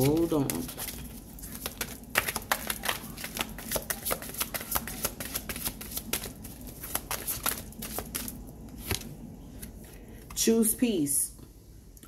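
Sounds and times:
cards being shuffled: 0.0s - 9.9s.

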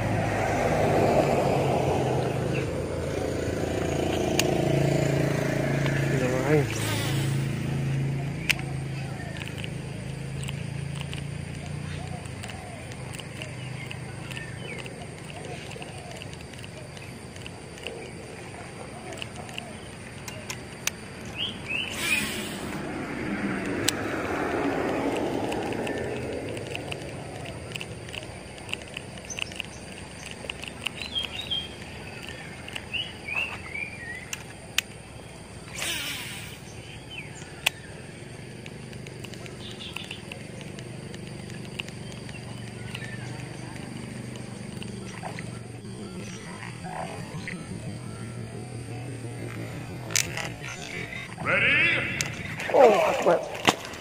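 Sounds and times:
road vehicle passing: 0.0s - 54.0s
brief hissing bursts: 6.7s - 7.5s, 21.9s - 22.8s, 35.7s - 36.7s
faint clicks: 8.4s - 22.8s, 24.6s - 35.0s, 38.5s - 48.0s, 49.4s - 51.4s
bird chirps: 11.5s - 22.7s, 29.2s - 38.6s, 39.3s - 54.0s.

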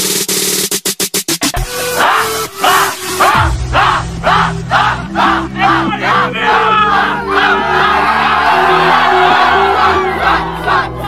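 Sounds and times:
crowd cheering: 2.0s - 11.0s
young people shouting and yelling: 2.0s - 11.0s.

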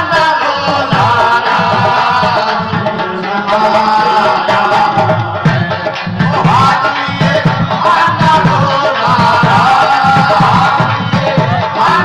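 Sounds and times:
hand drum beat: 0.0s - 12.0s.

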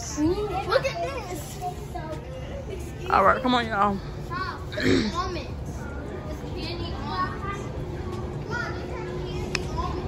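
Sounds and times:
children chattering: 0.0s - 10.0s
steady low hum: 0.0s - 10.0s.

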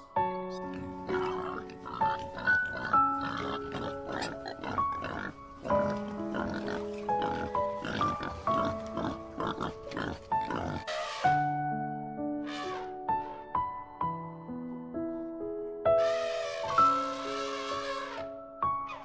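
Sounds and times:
background music: 0.0s - 19.0s
pigs grunting: 0.5s - 11.5s, 16.0s - 18.3s.

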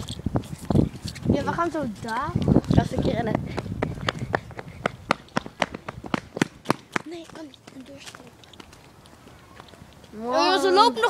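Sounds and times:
running footsteps: 0.0s - 10.2s.

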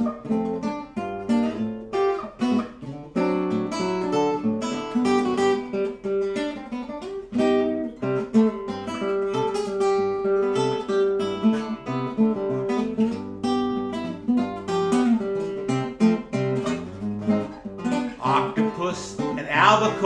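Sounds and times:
classical guitar fingerstyle: 0.0s - 20.0s.

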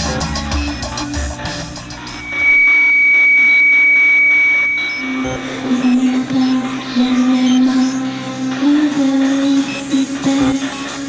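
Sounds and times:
faint rhythmic pulses: 0.0s - 11.0s
piercing high electronic tone: 0.5s - 10.9s.

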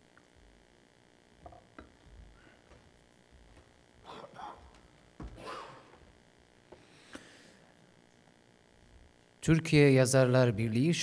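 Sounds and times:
low hum: 0.0s - 9.5s.

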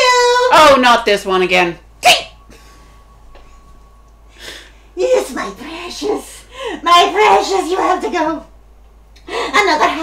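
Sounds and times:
faint steady hum: 0.0s - 10.0s
woman sneezing: 2.0s - 2.4s.

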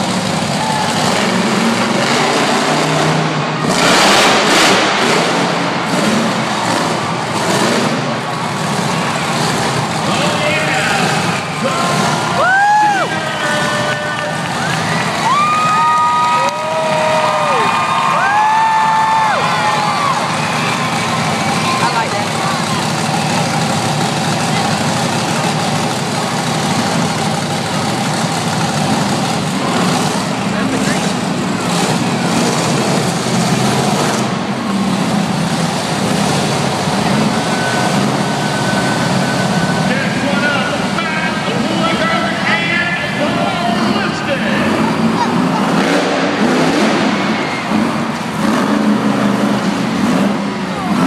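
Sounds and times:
crowd noise: 0.0s - 51.0s
monster truck engine revving: 0.0s - 51.0s.

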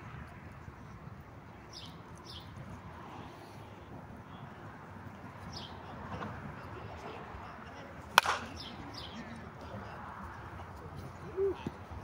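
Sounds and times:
bat hitting softball: 8.1s - 8.8s.

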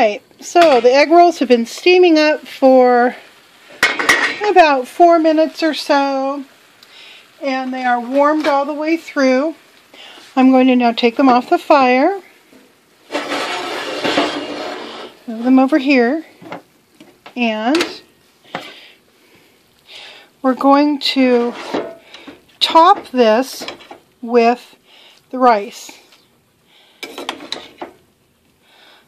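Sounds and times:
food sizzling in a skillet: 0.0s - 29.0s
utensil scraping cookware: 13.0s - 15.7s, 21.0s - 24.0s, 27.0s - 28.0s.

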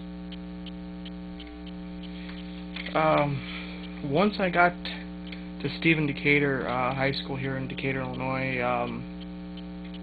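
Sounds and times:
faint ticks: 0.0s - 4.2s, 5.1s - 10.0s
electrical mains hum: 0.0s - 10.0s.

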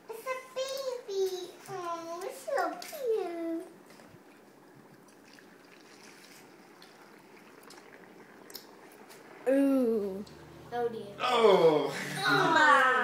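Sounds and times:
dry ice bubbling in water: 4.6s - 10.8s.

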